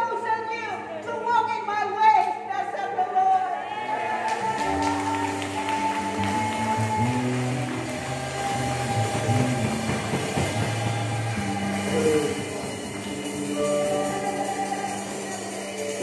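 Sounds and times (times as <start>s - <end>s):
electric bass guitar: 4.4s - 16.0s
sustained keyboard chords: 4.6s - 16.0s.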